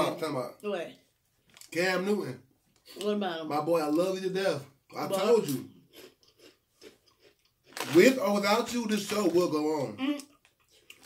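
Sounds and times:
man talking: 0.0s - 0.5s, 1.7s - 2.4s, 3.5s - 5.7s, 7.8s - 10.0s
chewing crunchy chips: 5.2s - 9.5s, 10.2s - 11.0s.

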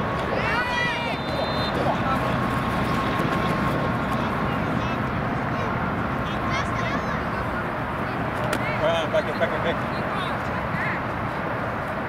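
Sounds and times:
low rumbling background noise: 0.0s - 12.0s
faint voices calling out: 0.2s - 11.5s.

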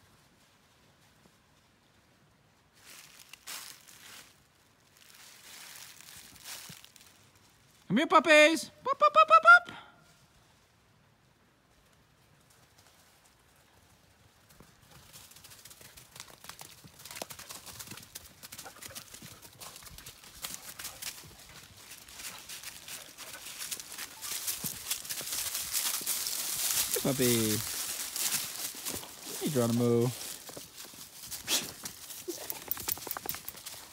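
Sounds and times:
footsteps on dry leaves: 2.7s - 7.8s, 19.6s - 33.9s.

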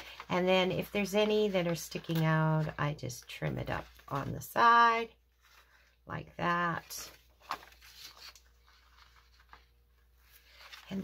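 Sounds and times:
paper rustling: 0.0s - 5.9s, 6.6s - 11.0s.

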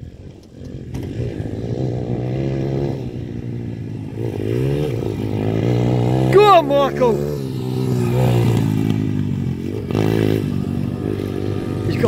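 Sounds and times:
small motorbike engine running: 0.0s - 12.0s.

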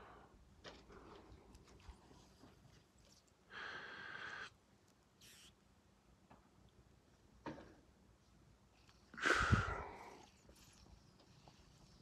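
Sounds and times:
faint hiss: 0.0s - 12.0s
soft breathy blow: 9.2s - 10.2s.

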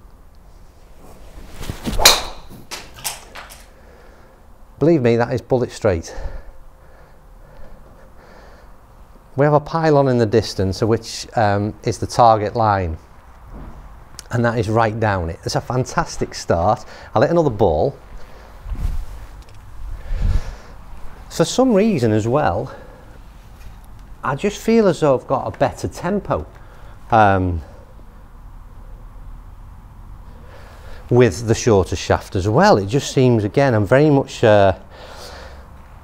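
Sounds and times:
faint handling noise: 0.4s - 3.8s
golf club swish: 0.8s - 3.7s
man's footsteps: 1.0s - 3.7s
golf club striking ball: 1.8s - 3.6s.

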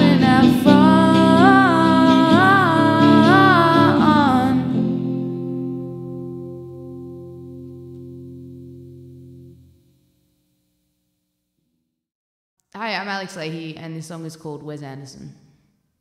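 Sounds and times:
woman singing wordless line: 0.0s - 5.3s
electric guitar chord ringing: 0.0s - 10.6s.

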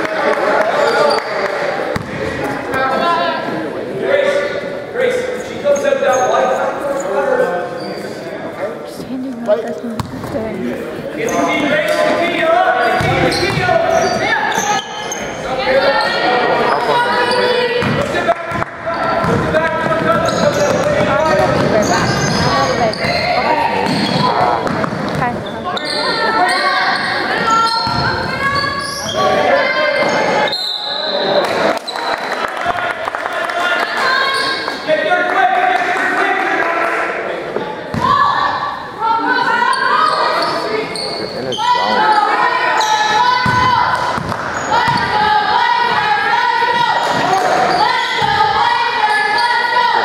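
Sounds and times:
voices calling and shouting: 0.6s - 32.1s, 33.6s - 50.0s
basketball bouncing on hardwood: 10.0s - 10.3s.

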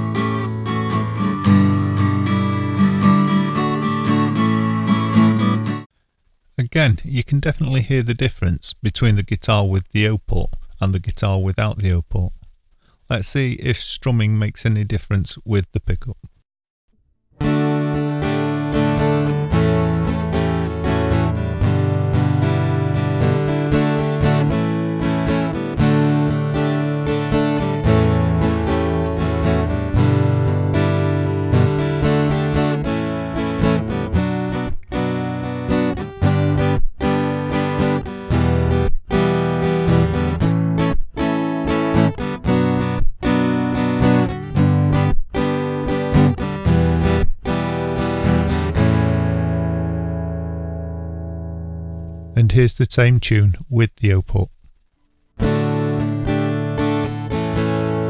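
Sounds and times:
guitar strummed in chords: 0.0s - 5.9s, 17.4s - 52.3s, 55.4s - 58.0s.

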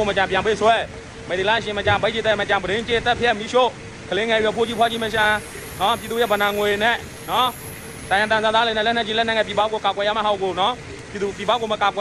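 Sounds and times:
faint background hiss: 0.0s - 12.0s
man talking: 0.0s - 12.0s.

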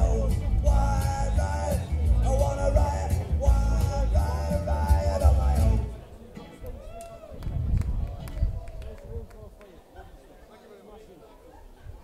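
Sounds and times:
live band playing: 0.0s - 6.6s
audience voices: 0.0s - 12.0s.

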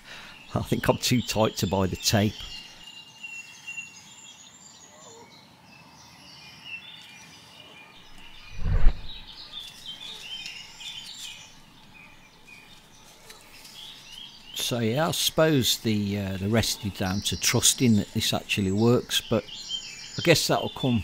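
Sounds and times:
birds chirping and singing: 0.0s - 21.0s.

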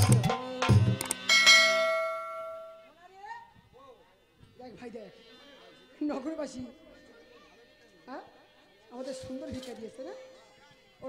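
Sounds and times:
bell-like metallic strike: 1.2s - 2.9s.

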